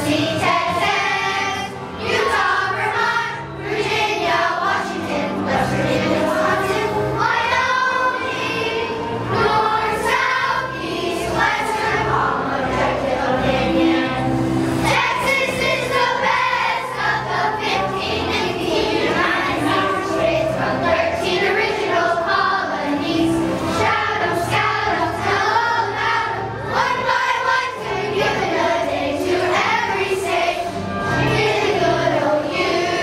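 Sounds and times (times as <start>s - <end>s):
children's choir singing: 0.0s - 33.0s.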